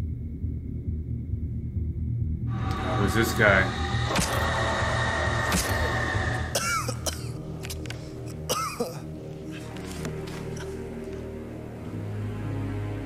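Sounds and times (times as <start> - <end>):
low drone: 0.0 - 8.5
high held tone: 2.5 - 7.1.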